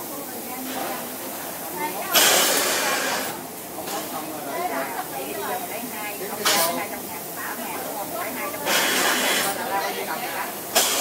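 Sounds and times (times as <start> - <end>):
compressed air hiss: 2.1 - 3.6, 8.6 - 9.6, 10.5 - 11.0.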